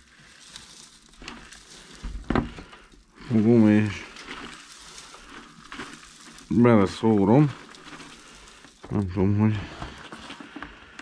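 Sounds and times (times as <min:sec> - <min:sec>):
wood chips rustling and trickling: 0:00.0 - 0:11.0.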